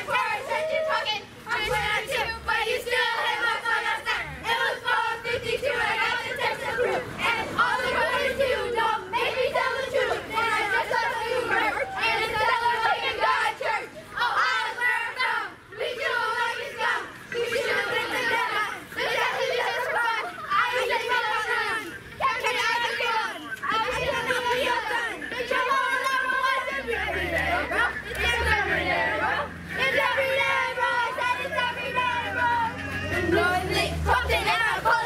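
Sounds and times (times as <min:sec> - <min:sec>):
young girls chattering: 0:00.0 - 0:35.0.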